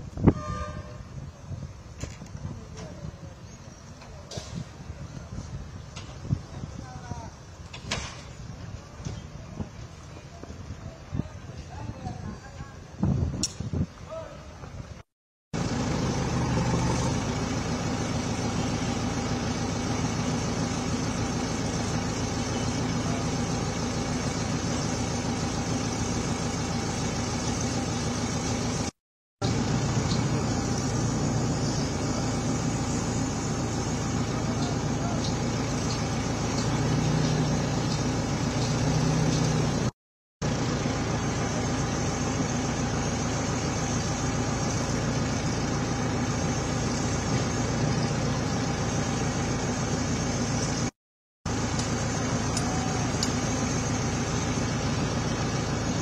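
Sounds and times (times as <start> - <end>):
machinery engines idling: 15.6 - 50.9, 51.5 - 56.0.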